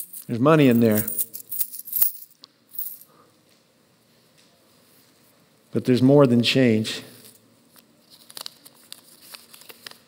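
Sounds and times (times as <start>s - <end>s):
coins jingling in cloth sock: 0.0s - 3.1s.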